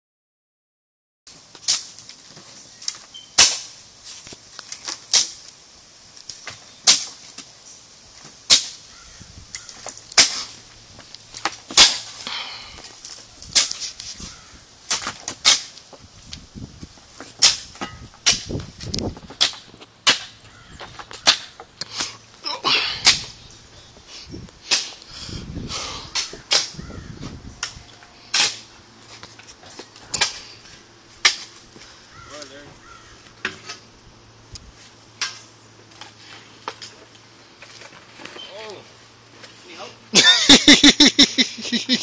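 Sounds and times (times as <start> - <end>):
shovels digging into rocky soil: 11.4 - 14.2, 14.8 - 16.0, 27.7 - 31.6.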